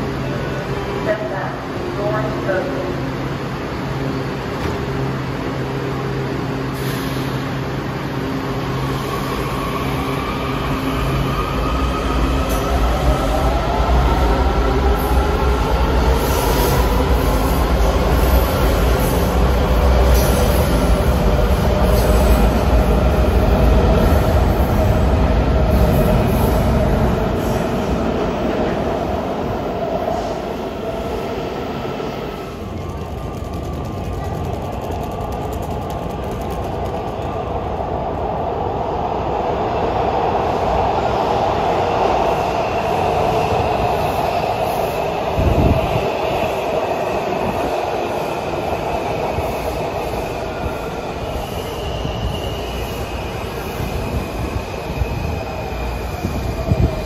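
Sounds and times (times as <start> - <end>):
subway train rumble: 0.0 - 57.0
faint whining from train wheels: 3.1 - 57.0.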